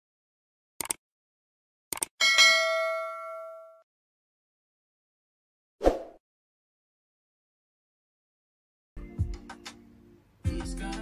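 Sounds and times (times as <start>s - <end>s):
double mouse click: 0.8s - 1.0s
notification bell ding: 2.2s - 3.8s.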